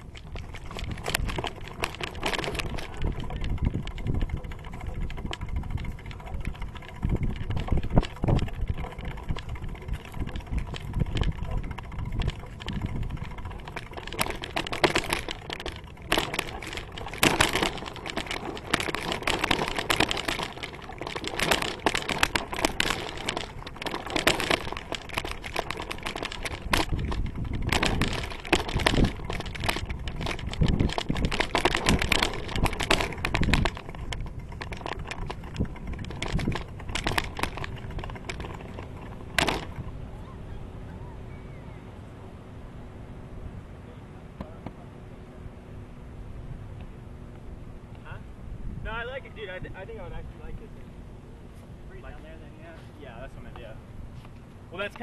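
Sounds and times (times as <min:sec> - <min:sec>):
bicycle rolling over dirt path: 0:00.0 - 0:40.8.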